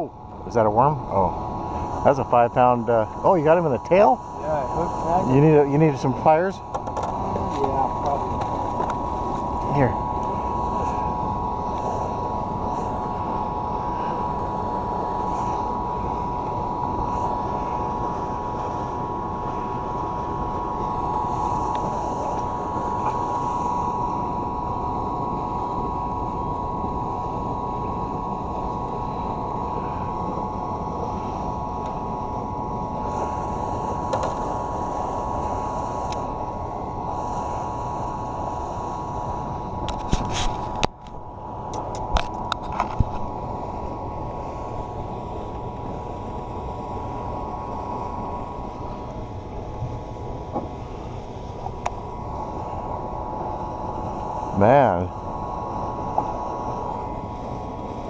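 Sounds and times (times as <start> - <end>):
motor hum with high whine: 0.0 - 58.0.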